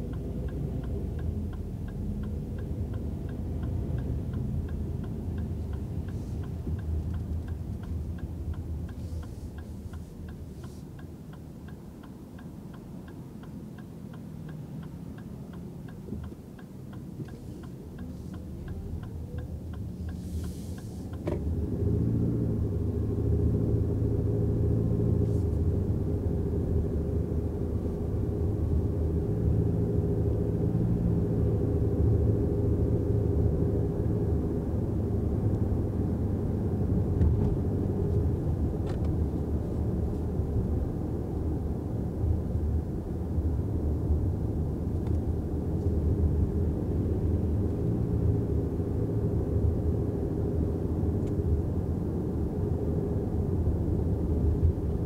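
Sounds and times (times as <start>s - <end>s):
road and tyre rumble: 0.0s - 55.0s
turn signal ticking: 0.0s - 55.0s.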